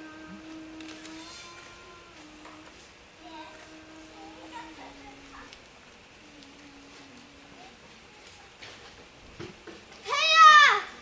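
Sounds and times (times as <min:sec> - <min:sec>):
high-pitched call: 0:00.0 - 0:05.5.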